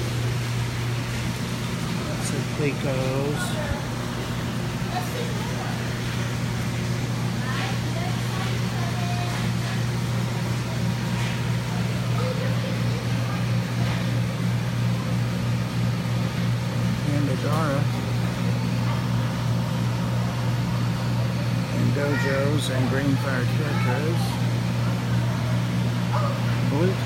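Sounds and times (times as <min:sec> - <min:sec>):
low electrical hum: 0:00.0 - 0:27.0
faint voices: 0:01.9 - 0:15.5.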